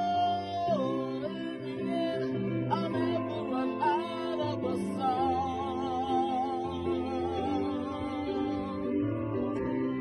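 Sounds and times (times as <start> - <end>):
sustained accompanying chords: 0.0 - 10.0.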